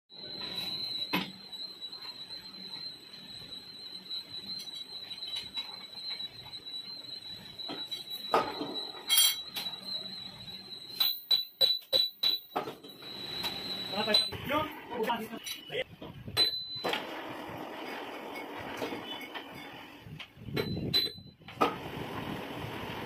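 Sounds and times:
thin high whine: 0.1s - 23.0s.

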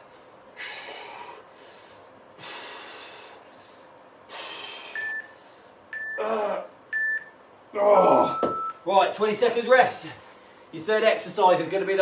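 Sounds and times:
man breathing hard: 0.5s - 6.6s
timer countdown beep: 4.9s - 5.3s, 5.9s - 6.3s, 6.9s - 7.4s, 8.3s - 8.8s.

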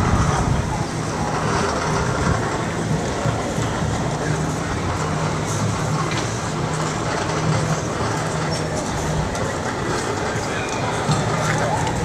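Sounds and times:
street rumble and hiss: 0.0s - 12.0s.

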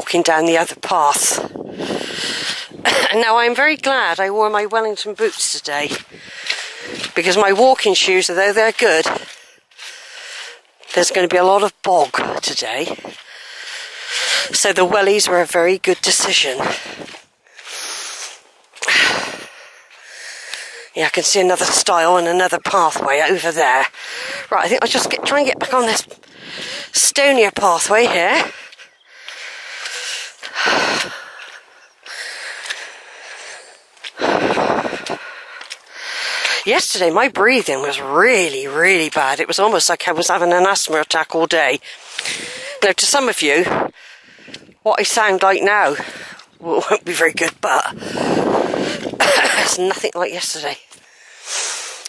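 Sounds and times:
person speaking: 0.0s - 1.5s, 2.9s - 9.3s, 10.9s - 13.1s, 14.2s - 16.9s, 20.6s - 28.7s, 36.3s - 43.7s, 44.8s - 48.1s, 49.2s - 50.8s
woman's heavy wheezy breathing: 6.1s - 7.1s, 9.2s - 10.7s, 13.2s - 14.5s, 16.8s - 21.0s, 23.9s - 24.5s, 26.3s - 27.0s, 28.4s - 36.6s, 41.8s - 42.8s, 51.0s - 52.0s.

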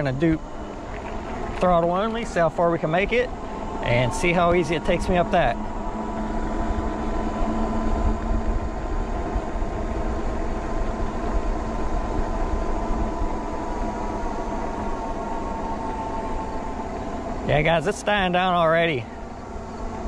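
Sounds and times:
electric motor whining: 0.0s - 20.0s
wind rumble on microphone: 3.0s - 17.8s.

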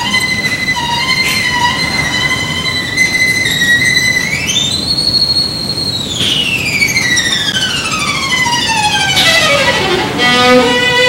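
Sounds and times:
violin holding high note: 6.5s - 11.0s.

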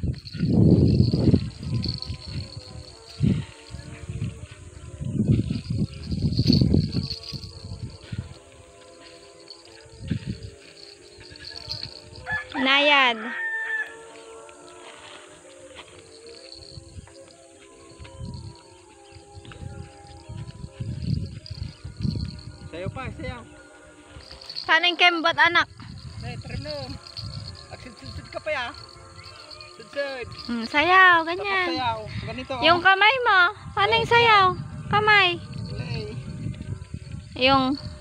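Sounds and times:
rooster crowing: 11.5s - 14.6s.

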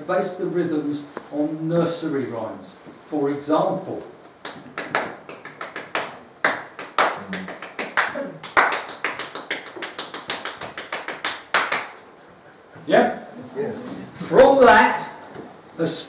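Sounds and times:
hands clapping a rhythm: 4.4s - 12.0s.

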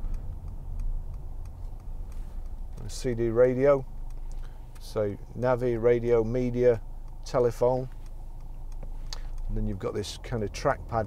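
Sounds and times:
faint clicks: 0.0s - 11.0s
road and drivetrain rumble in car: 0.0s - 11.0s.

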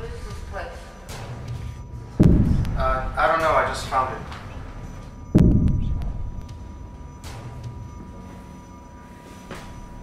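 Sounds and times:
loud heavy thud: 2.2s - 3.1s, 5.4s - 6.4s.

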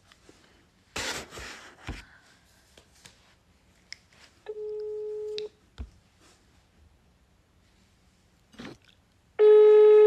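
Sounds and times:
telephone ringback tone: 9.4s - 10.0s.

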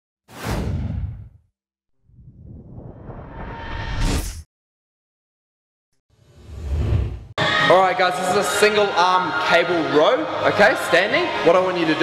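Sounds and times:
whoosh with deep rumble: 2.0s - 4.4s.

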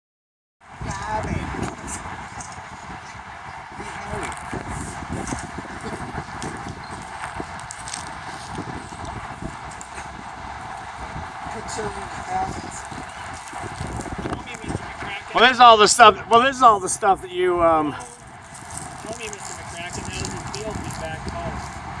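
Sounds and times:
wind on microphone: 0.6s - 22.0s.

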